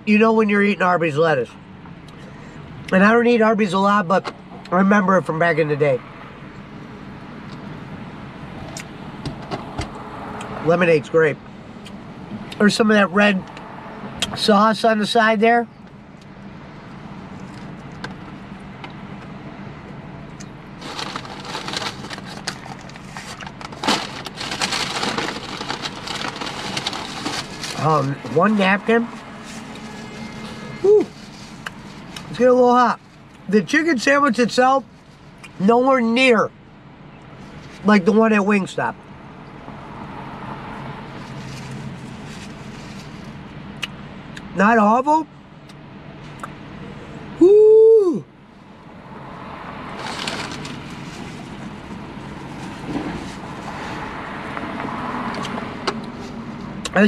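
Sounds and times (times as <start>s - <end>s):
low car cabin hum: 0.0s - 57.0s
paper bag rustling and crinkling: 20.8s - 28.6s, 29.3s - 32.2s, 50.0s - 51.7s.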